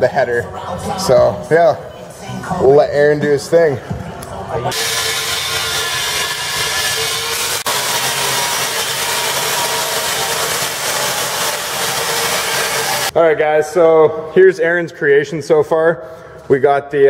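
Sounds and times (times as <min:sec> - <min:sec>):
angle grinder cutting steel: 0:04.7 - 0:13.1.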